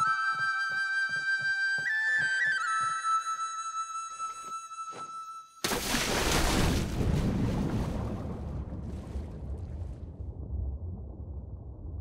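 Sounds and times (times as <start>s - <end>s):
loud splash into water: 5.6s - 10.4s
muffled underwater rushing: 6.0s - 12.0s.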